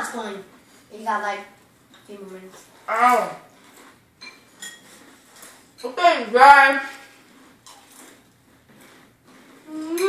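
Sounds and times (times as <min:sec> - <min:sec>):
spoons clinking against bowls: 0:04.2 - 0:04.9.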